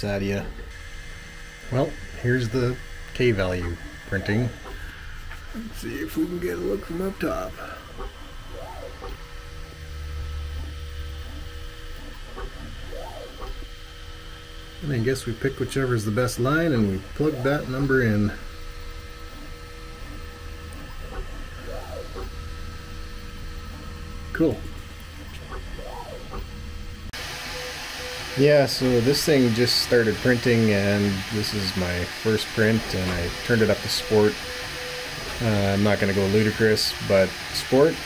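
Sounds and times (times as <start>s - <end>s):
steady low hum: 0.0s - 38.0s
stepper motors whining: 0.0s - 38.0s.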